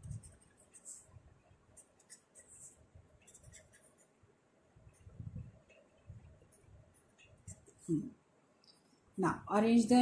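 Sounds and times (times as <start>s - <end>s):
pen scratching on paper: 1.8s - 4.2s.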